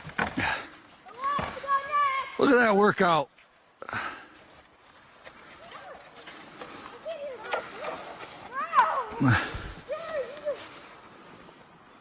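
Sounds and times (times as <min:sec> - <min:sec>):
children shouting: 0:07.0 - 0:10.6.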